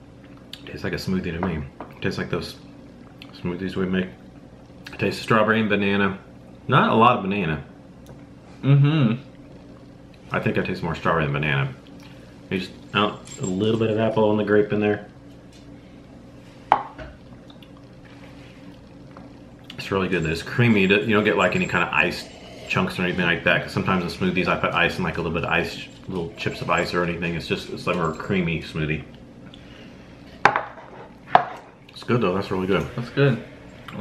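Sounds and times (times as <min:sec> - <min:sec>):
faint steady hum: 0:00.0 - 0:34.0
cup set down on table: 0:16.7 - 0:17.1.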